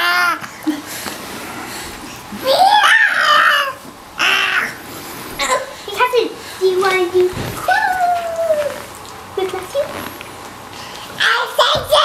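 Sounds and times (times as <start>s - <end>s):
child shouting: 2.4s - 4.8s, 11.2s - 12.0s
child squealing: 2.4s - 4.8s.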